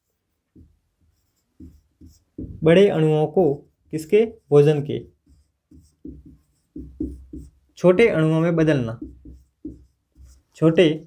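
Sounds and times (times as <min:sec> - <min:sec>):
marker pen writing on whiteboard: 0:00.0 - 0:11.0.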